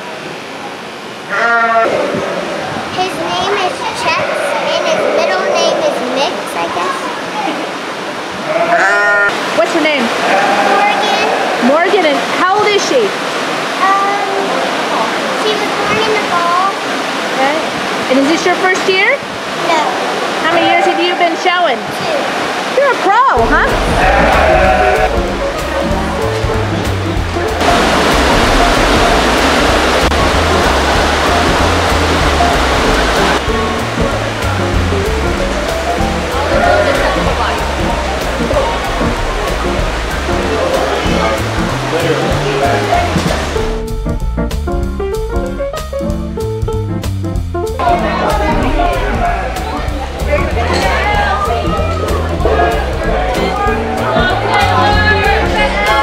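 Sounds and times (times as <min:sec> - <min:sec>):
sheep bleating: 0:01.3 - 0:02.6, 0:04.0 - 0:05.9, 0:08.4 - 0:09.4, 0:10.2 - 0:11.8, 0:23.8 - 0:25.2, 0:36.5 - 0:37.2
steady rushing noise: 0:02.1 - 0:08.5, 0:09.4 - 0:44.1
background music with bass: 0:23.4 - 0:56.0.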